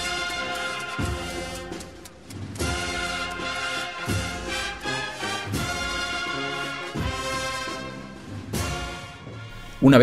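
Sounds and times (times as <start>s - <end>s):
sustained brass chords: 0.0s - 9.8s.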